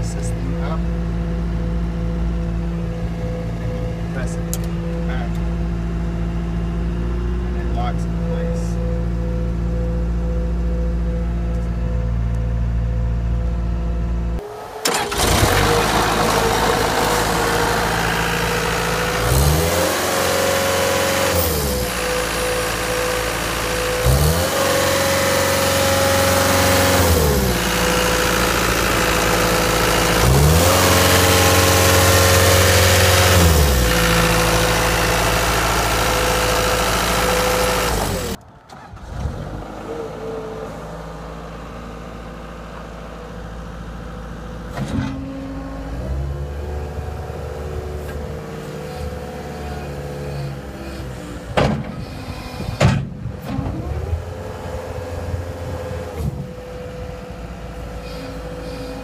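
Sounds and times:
diesel engine idling and revving: 0.0s - 59.0s.

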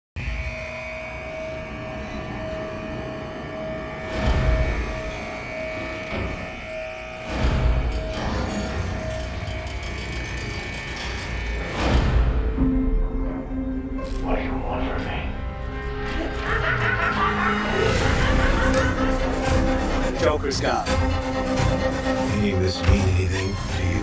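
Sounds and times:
low drone: 0.2s - 24.0s.

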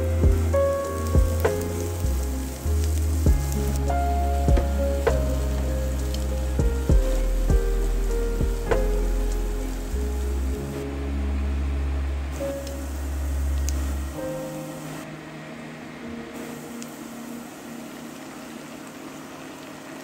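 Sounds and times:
onion sizzling in oil: 0.0s - 10.5s
background music with bass: 0.0s - 15.1s.

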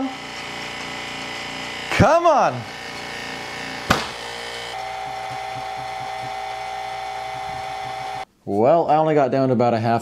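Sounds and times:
vacuum pump throbbing: 0.0s - 8.3s
sharp knock: 3.9s - 4.2s.

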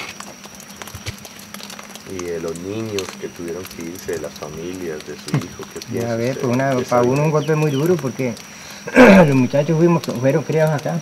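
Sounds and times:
faint steady background hum: 0.0s - 11.0s.

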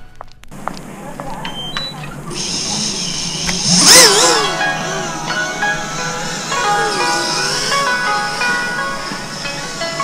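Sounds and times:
quadcopter motors whining: 0.6s - 10.0s.

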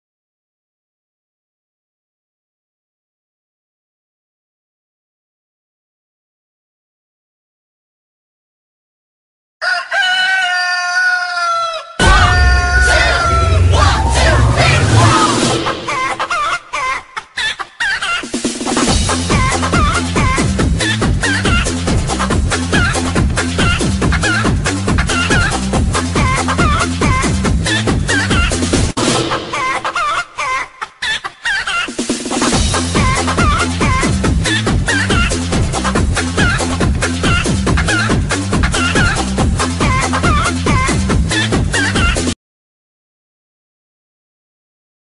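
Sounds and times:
chicken call in novelty song: 9.6s - 12.1s
techno bass beat: 12.0s - 16.0s, 18.9s - 28.9s, 32.5s - 42.3s.

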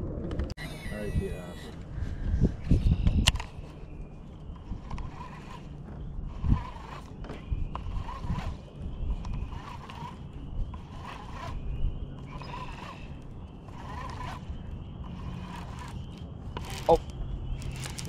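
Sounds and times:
fishing reel cranking: 4.4s - 18.0s.

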